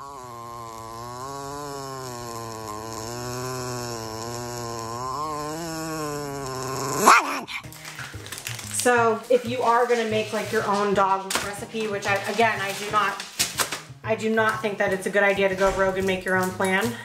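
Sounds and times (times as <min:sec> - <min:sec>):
small dog growling: 0:00.0 - 0:07.7.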